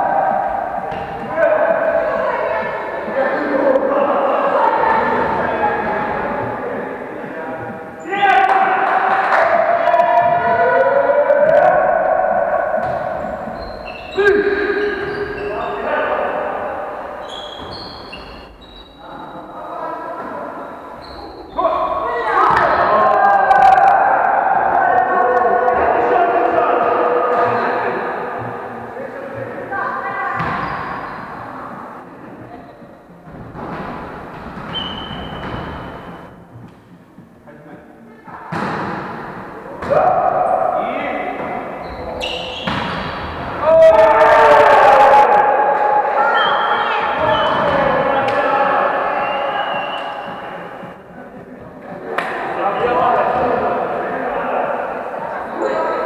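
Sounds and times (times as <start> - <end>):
volleyball hits echoing: 0.4 - 1.9, 11.4 - 13.6, 22.4 - 23.9, 38.5 - 40.6, 42.5 - 43.6
players shouting: 8.0 - 17.8, 21.5 - 28.8, 39.8 - 50.8.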